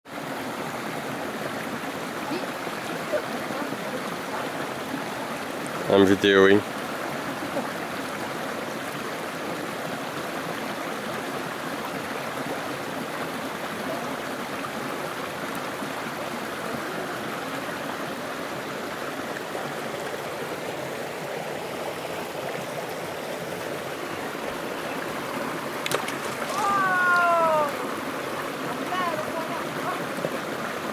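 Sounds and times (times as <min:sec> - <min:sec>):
stream running over rocks: 0:00.0 - 0:30.9
water splash: 0:25.7 - 0:27.9.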